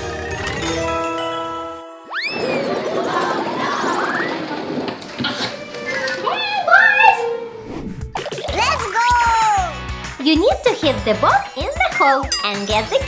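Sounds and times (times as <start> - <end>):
chime-like chord: 0.7 - 2.8
rising swoop: 7.5 - 8.8
rattling rising whoosh: 7.6 - 8.8.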